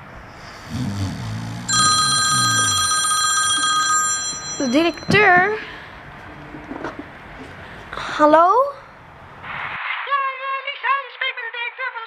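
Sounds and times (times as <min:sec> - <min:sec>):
person snoring: 0:00.4 - 0:03.0
electronic phone ringtone: 0:01.7 - 0:05.7.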